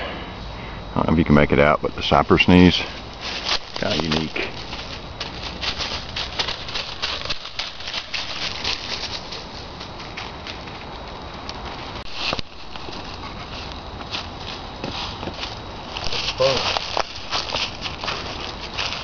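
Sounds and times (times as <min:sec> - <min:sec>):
footsteps crunching dry leaves: 0:02.2 - 0:19.0.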